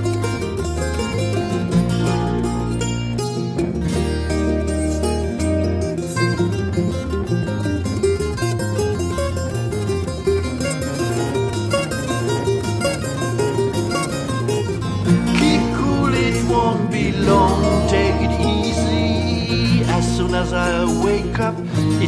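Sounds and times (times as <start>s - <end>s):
bouzouki picking: 0.0s - 22.0s
electric bass line: 0.0s - 22.0s
twelve-string guitar picking: 0.0s - 22.0s.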